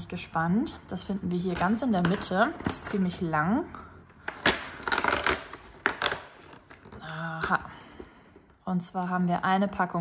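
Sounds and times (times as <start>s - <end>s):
cardboard snapping: 4.2s - 6.8s
cardboard tearing: 4.3s - 6.8s.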